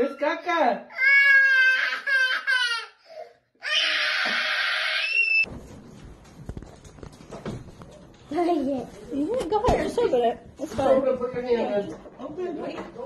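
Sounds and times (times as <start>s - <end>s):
young boy crying: 0.9s - 5.1s
loud harsh scream: 3.6s - 5.5s.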